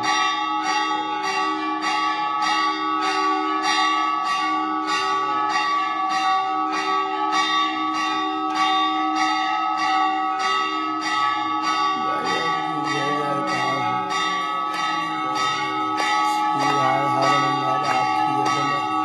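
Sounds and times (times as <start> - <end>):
temple bells ringing: 0.0 - 19.0.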